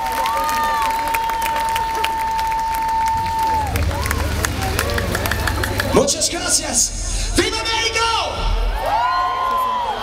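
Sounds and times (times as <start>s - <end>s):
audience applauding: 0.0s - 6.9s, 8.7s - 10.0s
cheering: 0.0s - 10.0s.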